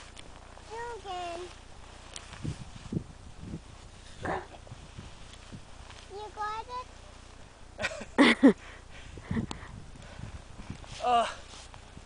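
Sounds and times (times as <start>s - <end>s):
footsteps crunching in snow: 0.0s - 7.5s, 10.2s - 12.0s.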